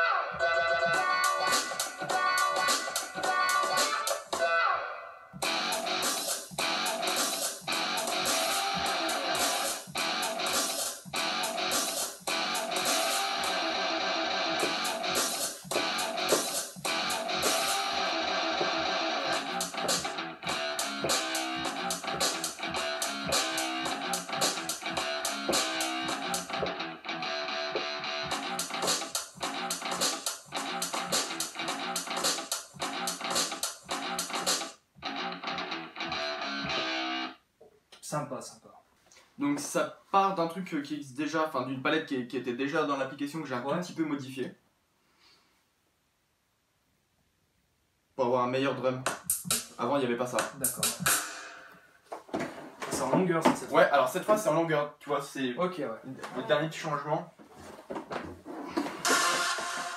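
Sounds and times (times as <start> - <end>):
electronic beat with drum samples: 0.0 - 4.4, 5.4 - 34.7, 49.1 - 51.7, 58.9 - 59.9
person speaking: 52.8 - 57.3.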